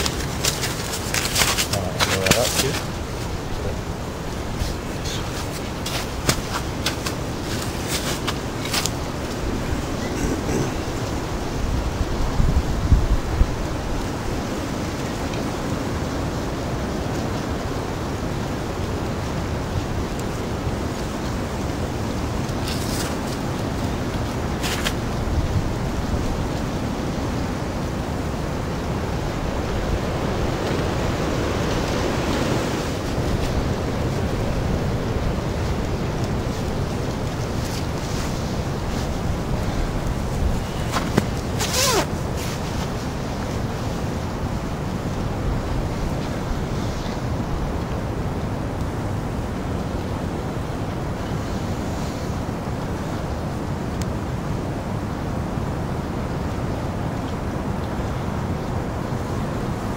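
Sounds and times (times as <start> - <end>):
crackles of dry wood shavings: 0.0 - 11.2, 19.8 - 26.4, 30.1 - 44.2
steady rushing noise: 0.0 - 55.3.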